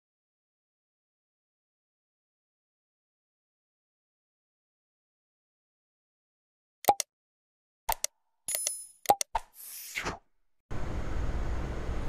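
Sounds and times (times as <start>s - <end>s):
mouse clicks: 7.9s - 9.5s.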